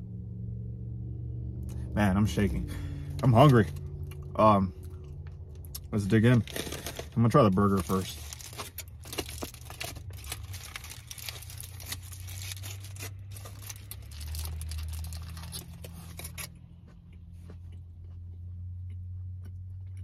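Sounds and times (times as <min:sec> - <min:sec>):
low steady hum: 0:00.0 - 0:20.0
foil wrapper crinkling: 0:06.0 - 0:16.5.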